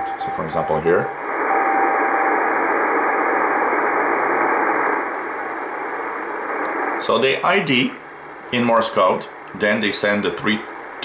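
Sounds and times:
faint steady beacon tone: 0.0 - 2.6
shortwave receiver hiss: 0.0 - 11.0.

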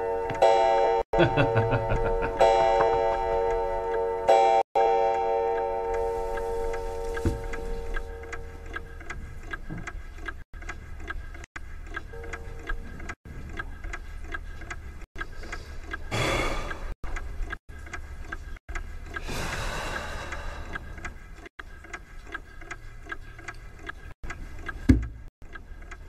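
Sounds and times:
tense held music chord: 0.0 - 8.7
clock-like ticking: 0.3 - 26.0.

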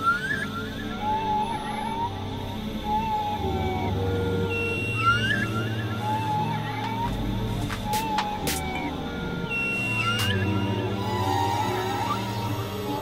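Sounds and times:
low synthesizer drone: 0.0 - 13.0.

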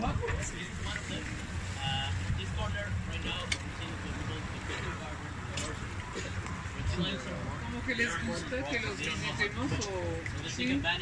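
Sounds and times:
boat engine rumbling: 0.0 - 11.0
water sloshing against hull: 0.0 - 11.0.

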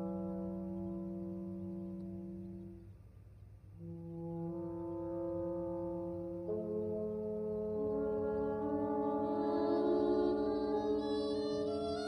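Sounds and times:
orchestra sustained brass chord: 0.0 - 3.0, 3.6 - 12.0.

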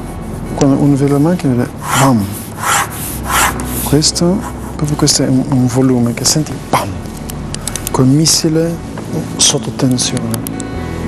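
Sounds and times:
pencil sketching on paper: 0.0 - 6.5.

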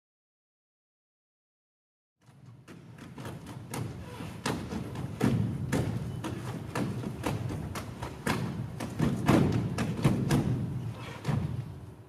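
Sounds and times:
feet thumping on stage floor: 2.7 - 11.9.

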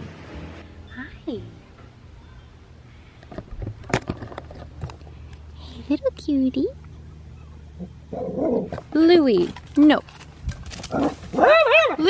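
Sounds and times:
dog growling and snarling: 8.1 - 8.8.

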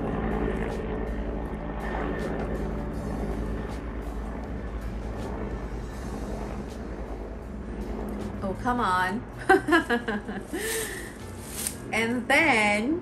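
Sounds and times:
helicopter drone: 0.0 - 13.0.

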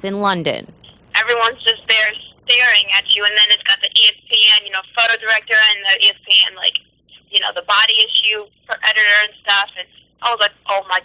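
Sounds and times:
woman speaking over telephone: 0.0 - 11.0.

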